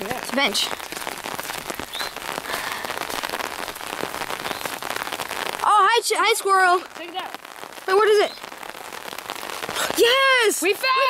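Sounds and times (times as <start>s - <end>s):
pouring rain: 0.0s - 11.0s.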